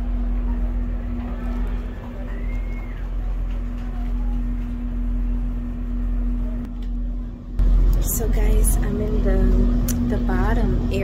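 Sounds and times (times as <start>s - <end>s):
boat engine drone: 0.0s - 11.0s
steady hum tone: 0.0s - 11.0s.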